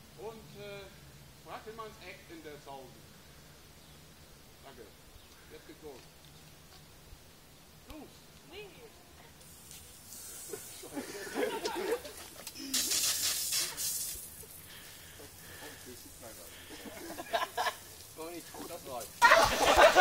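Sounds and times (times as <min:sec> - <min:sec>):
loud rushing hiss: 0:06.9 - 0:20.0
group talking and calling out: 0:07.7 - 0:20.0.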